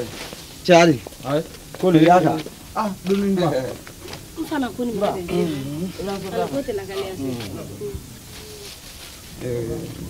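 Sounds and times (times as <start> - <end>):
person talking: 4.4 - 8.1.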